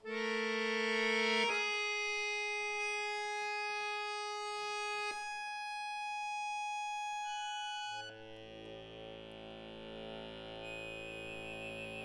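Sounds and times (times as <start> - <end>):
accordion holding sustained notes: 0.0 - 12.0.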